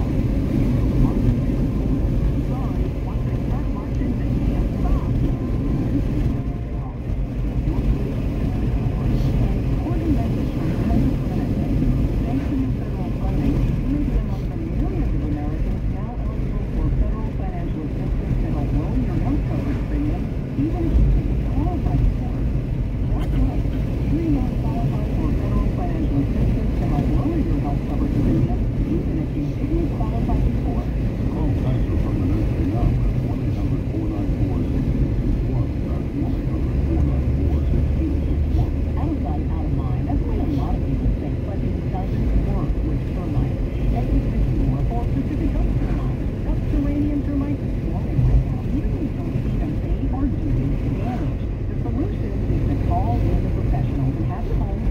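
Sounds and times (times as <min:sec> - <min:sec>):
car road and engine noise: 0:00.0 - 0:54.9
low hum: 0:00.0 - 0:54.9
muffled voice: 0:00.0 - 0:54.9.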